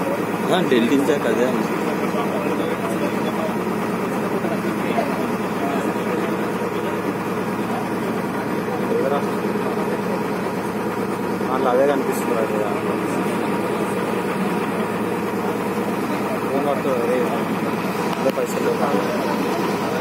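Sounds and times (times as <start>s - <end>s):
boat engine running: 0.0s - 20.0s
faint voices talking: 0.0s - 20.0s.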